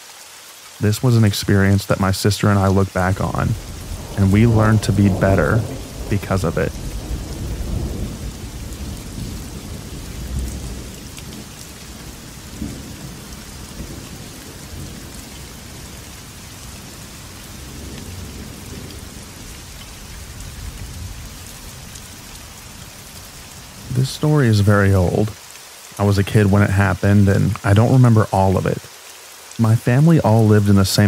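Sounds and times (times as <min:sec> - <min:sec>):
steady rain: 0:00.0 - 0:31.0
low thunder rumble: 0:02.6 - 0:25.3.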